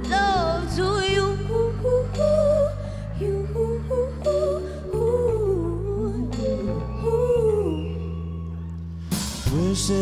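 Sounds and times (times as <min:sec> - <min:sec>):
backing singers humming: 0:00.0 - 0:08.7.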